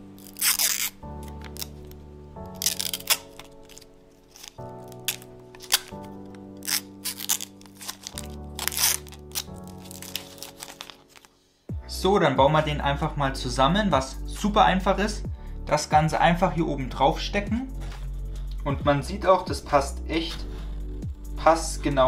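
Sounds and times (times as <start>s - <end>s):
plastic film crinkling: 0.0s - 11.4s
background music with held chords: 0.0s - 22.0s.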